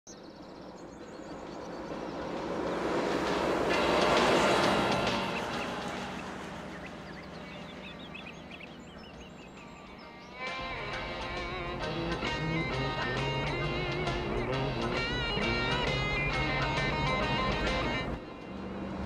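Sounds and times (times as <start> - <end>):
truck driving past: 0.1 - 19.0.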